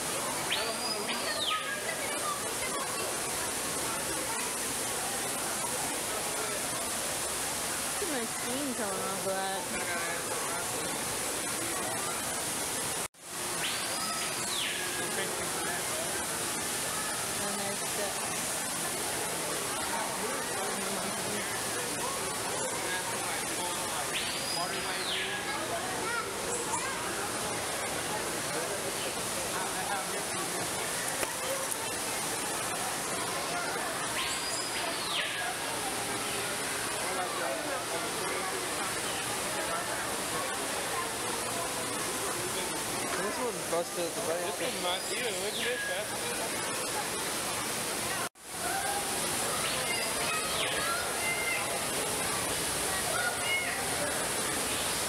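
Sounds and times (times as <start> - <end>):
murmur of voices: 0.0 - 55.0
waterfall pouring into pool: 0.0 - 55.0.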